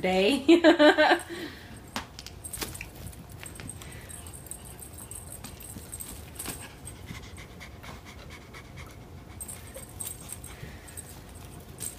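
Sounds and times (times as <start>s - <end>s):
cat panting: 3.9s - 11.4s.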